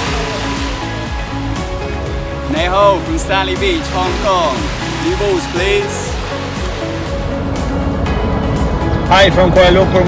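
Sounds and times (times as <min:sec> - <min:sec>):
steady rushing noise: 0:00.0 - 0:09.8
background music with sustained tones: 0:00.0 - 0:10.0.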